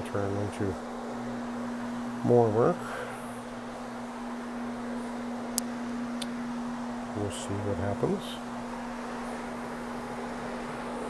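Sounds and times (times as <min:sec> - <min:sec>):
carpet machine motor hum: 0:00.0 - 0:11.0.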